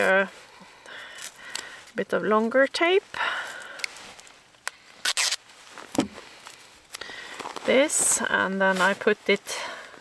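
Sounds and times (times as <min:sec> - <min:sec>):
tape ripping off roll: 0:05.0 - 0:06.2.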